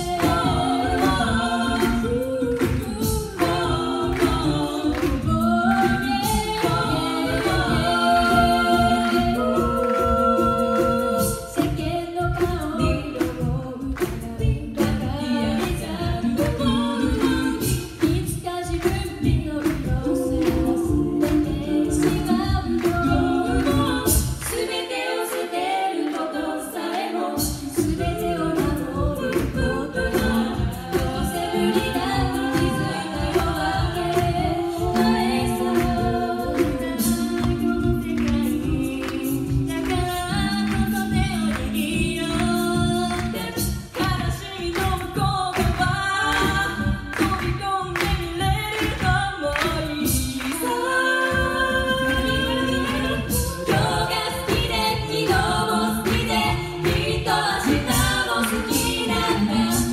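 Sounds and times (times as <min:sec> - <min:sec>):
female a cappella singing: 0:00.0 - 0:59.9
vocal percussion beat: 0:00.0 - 0:59.9.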